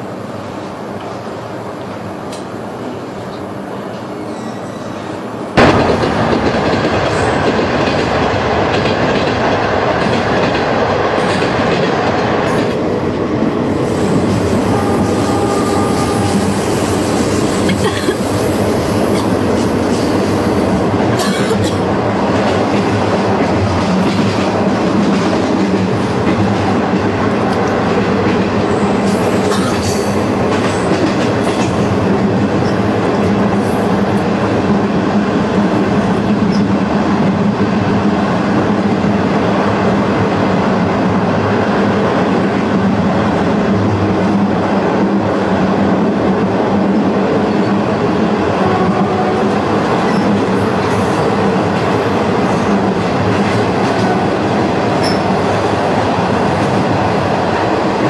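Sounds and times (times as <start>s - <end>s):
train running rumble: 0.0s - 58.0s.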